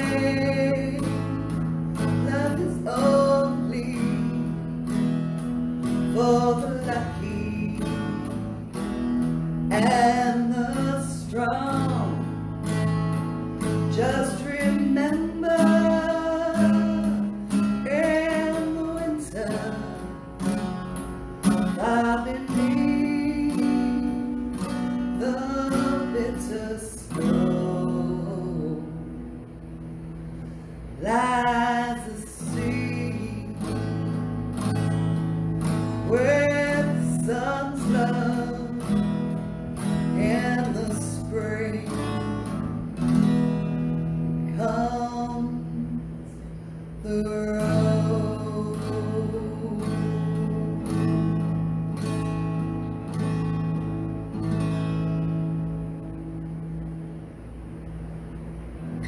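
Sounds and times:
woman singing: 0.0 - 4.6, 6.1 - 8.4, 9.7 - 12.3, 13.9 - 20.2, 21.5 - 29.0, 31.0 - 33.9, 36.0 - 39.0, 40.1 - 42.4, 44.5 - 46.2, 47.0 - 50.6
strummed acoustic guitar: 0.0 - 59.0.

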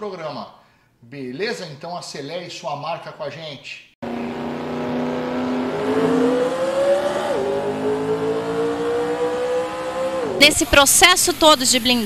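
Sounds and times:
car engine accelerating: 4.0 - 10.6.

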